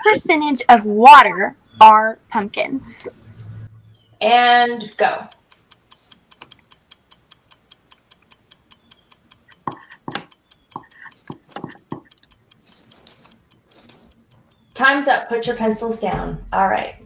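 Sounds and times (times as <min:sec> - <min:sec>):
countdown clock ticking: 0:04.4 - 0:16.0.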